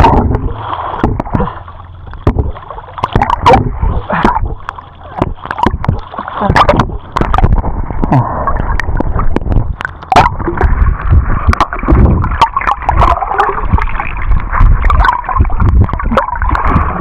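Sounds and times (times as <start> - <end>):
muffled underwater gurgling: 0.0 - 17.0
water splashing over microphone: 0.0 - 17.0.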